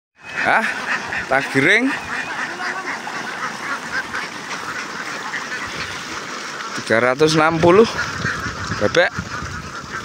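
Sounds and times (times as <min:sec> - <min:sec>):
ducks quacking: 0:00.2 - 0:10.0.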